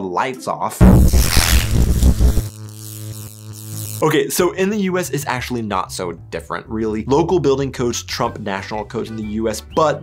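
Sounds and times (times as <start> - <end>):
buzzing electric zap: 0.8 - 4.0.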